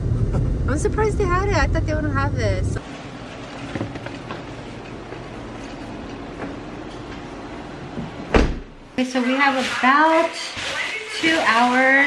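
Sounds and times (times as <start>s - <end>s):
heavy thump: 8.3s - 8.8s.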